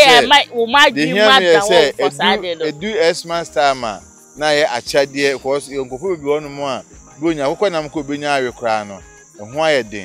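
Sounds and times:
man talking: 0.0 - 0.3, 0.9 - 10.0
crickets chirring: 0.0 - 10.0.

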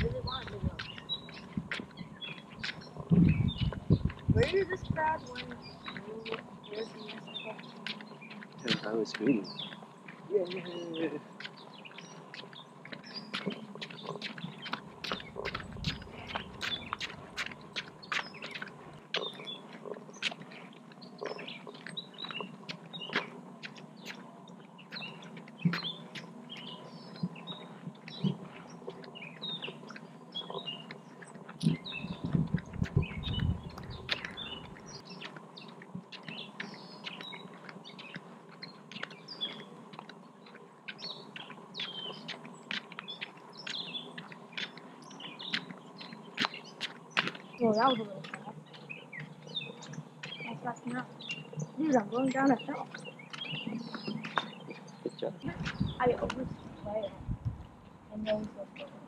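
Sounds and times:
songbirds chirping: 0.0 - 59.0
low rumble: 55.5 - 58.2.

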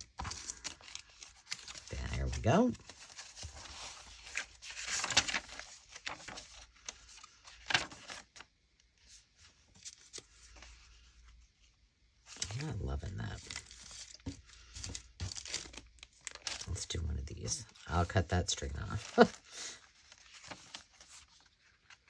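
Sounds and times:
paper rustling and crackling: 0.0 - 11.4, 12.2 - 22.0.

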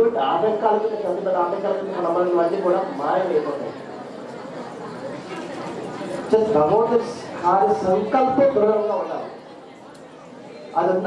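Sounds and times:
murmur of audience chatter: 0.0 - 11.0.

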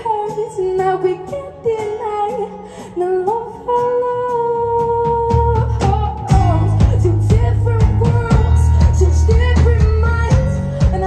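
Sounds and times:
guitar: 0.0 - 11.0
low bass notes: 5.3 - 11.0.

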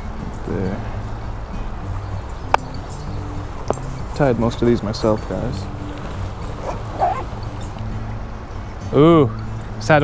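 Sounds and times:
stream water rushing: 1.7 - 7.8.

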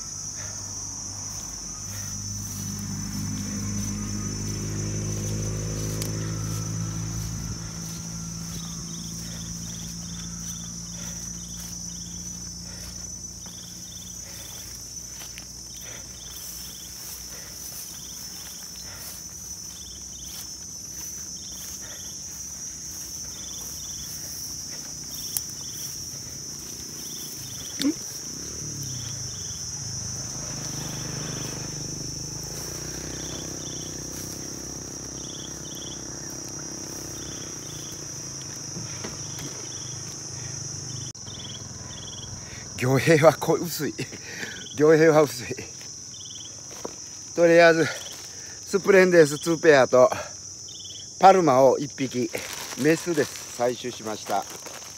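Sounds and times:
high-pitched insect chorus: 0.0 - 54.9
insect double chirp: 0.0 - 54.9.

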